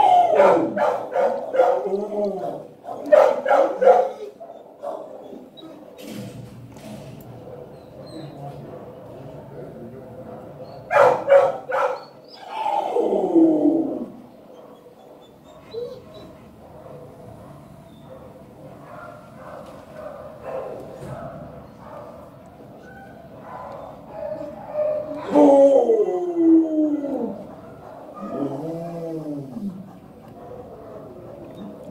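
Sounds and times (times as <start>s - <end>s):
dog barking: 0.0s - 1.9s, 2.8s - 5.4s, 7.4s - 9.1s, 10.3s - 12.1s, 14.5s - 25.4s, 27.6s - 28.5s, 30.3s - 31.9s
dog whining: 3.9s - 6.0s, 7.6s - 8.6s, 11.8s - 16.6s, 22.8s - 30.2s, 31.1s - 31.9s
dog whimpering: 4.1s - 6.0s, 7.7s - 8.6s, 11.8s - 16.5s, 28.2s - 30.2s, 31.3s - 31.9s.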